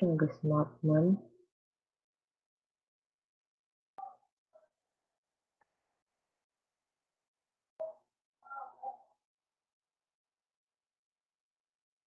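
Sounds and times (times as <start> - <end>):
person speaking: 0.0 - 1.2.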